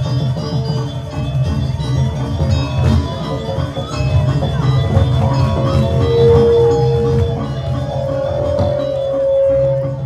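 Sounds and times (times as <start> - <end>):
metallophones ringing: 0.0 - 10.0
pulsing low beat: 0.0 - 10.0.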